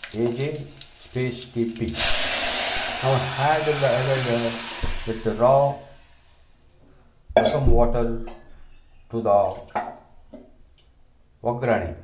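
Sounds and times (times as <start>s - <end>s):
man speaking: 3.0s - 5.9s, 7.4s - 8.3s
faint background noise: 3.0s - 12.0s.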